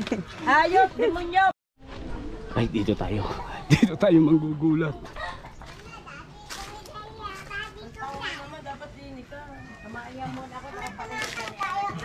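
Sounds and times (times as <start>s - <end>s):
children calling and chatting: 0.3s - 12.0s.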